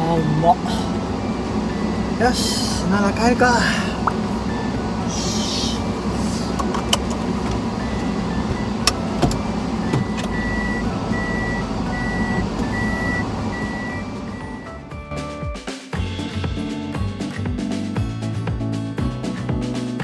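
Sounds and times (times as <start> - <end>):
reverse gear warning beep: 0.0 - 14.8
van engine idling: 0.0 - 15.0
seatbelt buckle clicks: 6.6 - 7.6.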